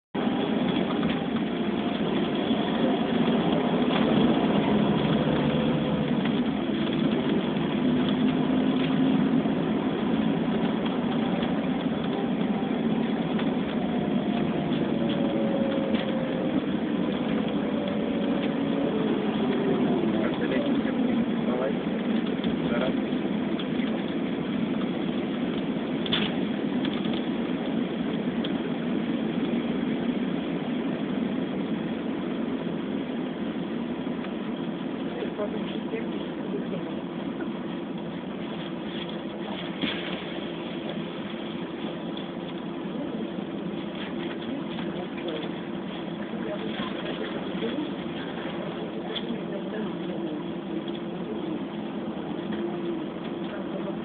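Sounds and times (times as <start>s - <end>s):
road noise rumble: 0.0s - 54.0s
engine tones rising and falling: 0.1s - 54.0s.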